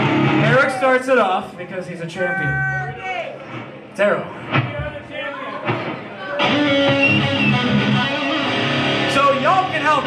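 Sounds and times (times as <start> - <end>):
electric guitar strumming chords: 5.7 - 10.0.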